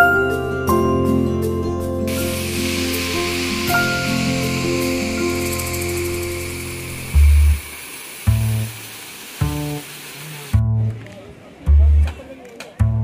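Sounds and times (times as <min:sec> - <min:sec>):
held music chords: 0:00.0 - 0:11.0
steady hiss: 0:02.1 - 0:10.6
deep bass notes: 0:10.6 - 0:11.0, 0:11.7 - 0:12.1.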